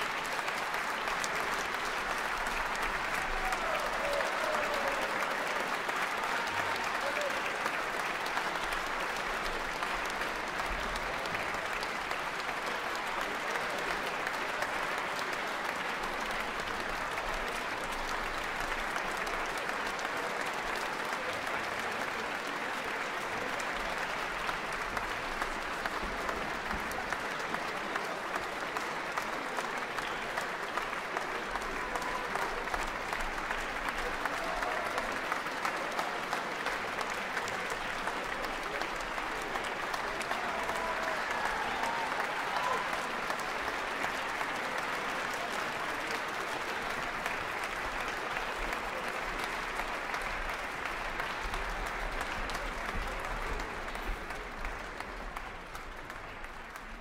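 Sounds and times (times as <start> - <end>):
audience applauding: 0.0 - 57.0.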